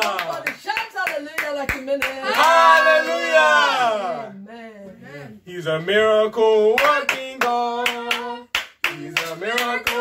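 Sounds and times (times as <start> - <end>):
sharp hand claps: 0.0 - 2.5, 6.8 - 10.0
man singing worship song: 5.1 - 10.0.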